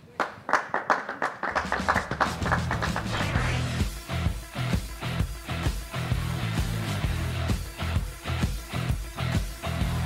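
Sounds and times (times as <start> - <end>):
group clapping: 0.0 - 3.7
music with bass line: 1.7 - 10.0.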